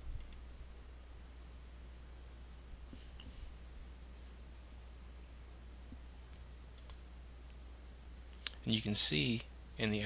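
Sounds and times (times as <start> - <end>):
low electrical hum and hiss: 0.0 - 10.0
computer mouse click: 0.2 - 0.4, 6.8 - 7.0.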